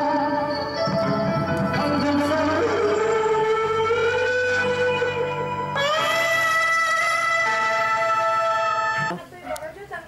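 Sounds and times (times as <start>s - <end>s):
karaoke backing track: 0.0s - 10.0s.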